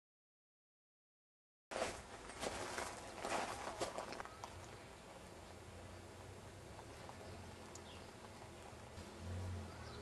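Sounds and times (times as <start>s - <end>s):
footsteps on dry ground: 1.7s - 4.6s.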